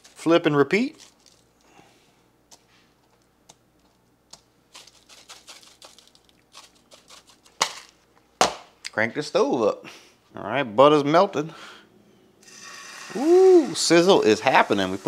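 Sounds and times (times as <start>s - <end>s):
seasoning shaker rustling: 0.0s - 1.6s, 2.5s - 8.1s.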